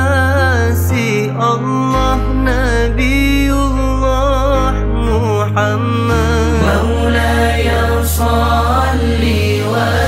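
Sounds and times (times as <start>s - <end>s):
low bass notes: 0.0s - 8.7s
backing music: 3.0s - 10.0s
group singing devotional song: 6.1s - 10.0s.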